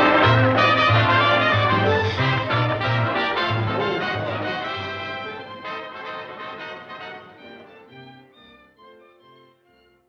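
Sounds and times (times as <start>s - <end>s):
orchestral music with brass and strings: 0.0s - 10.0s.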